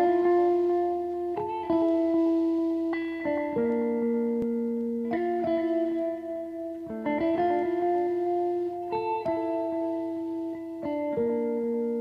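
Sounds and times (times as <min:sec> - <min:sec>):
plucked guitar notes: 0:00.0 - 0:12.0.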